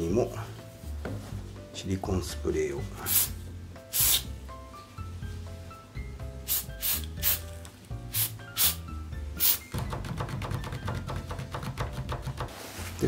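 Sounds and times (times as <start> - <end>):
aerosol spray hissing bursts: 3.0 - 4.3, 6.4 - 7.5, 8.1 - 9.7.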